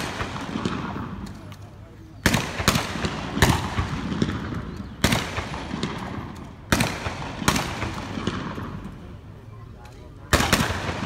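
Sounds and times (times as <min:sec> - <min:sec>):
rifle volleys with echo: 0:00.0 - 0:09.3, 0:10.3 - 0:11.0.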